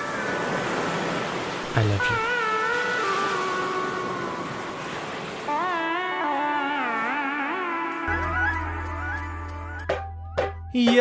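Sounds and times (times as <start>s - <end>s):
held musical note: 5.5s - 11.0s.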